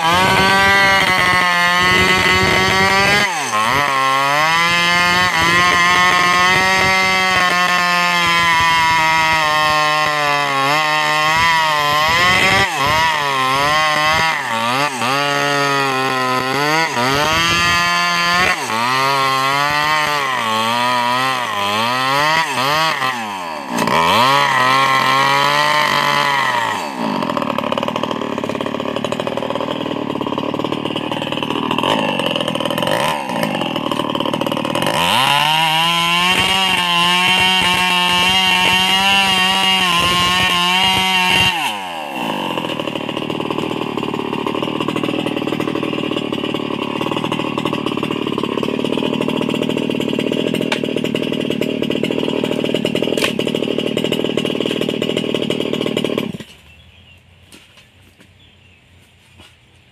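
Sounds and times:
chainsaw engine revving and idling: 0:00.0 - 0:58.2.

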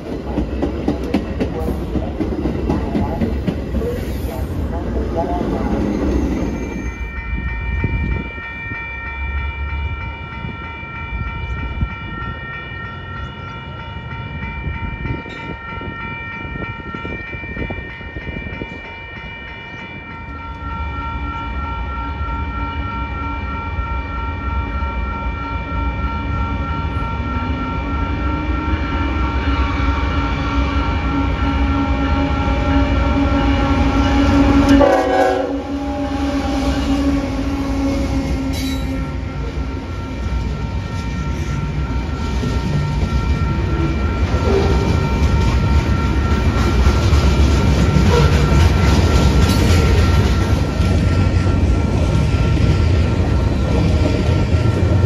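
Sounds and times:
railroad crossing bells ringing: 0:00.0 - 0:55.0
diesel locomotive rumble: 0:28.9 - 0:55.0.

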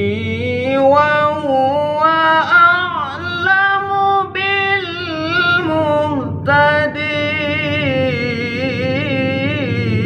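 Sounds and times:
young man reciting melodically: 0:00.0 - 0:10.0.

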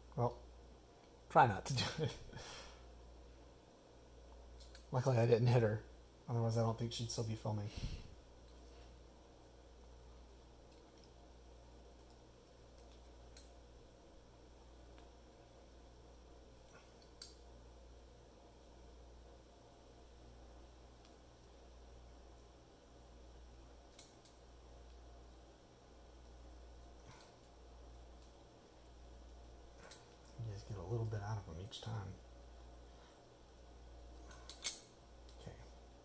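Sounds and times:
low room hum: 0:00.0 - 0:36.0
faint clicks of pliers: 0:04.6 - 0:04.9, 0:23.9 - 0:25.0, 0:34.3 - 0:35.5.

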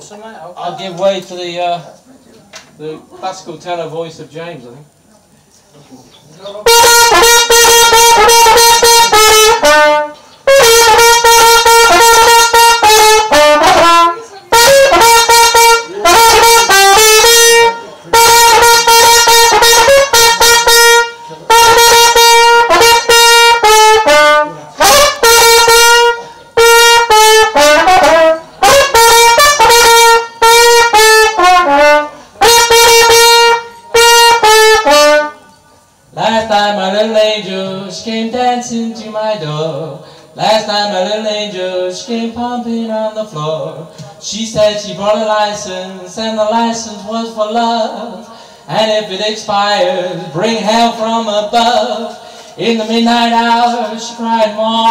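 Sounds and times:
solo trumpet melody: 0:06.6 - 0:35.6.

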